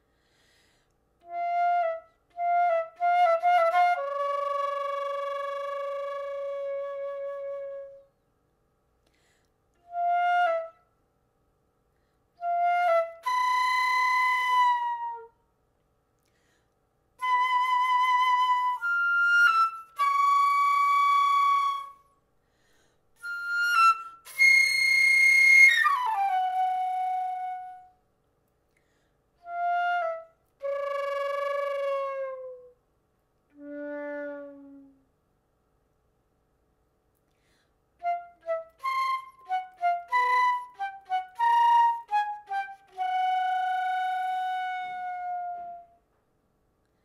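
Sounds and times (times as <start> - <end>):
solo flute notes: 1.2 - 8.2, 9.8 - 11.0, 12.4 - 15.4, 17.2 - 22.2, 23.2 - 28.0, 29.4 - 32.8, 33.5 - 35.2, 38.0 - 46.2.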